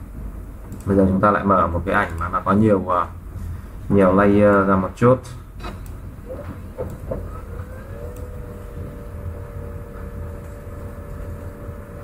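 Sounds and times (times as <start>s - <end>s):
low background hum: 0.0s - 12.0s
motor-like tone rising in pitch: 7.3s - 12.0s.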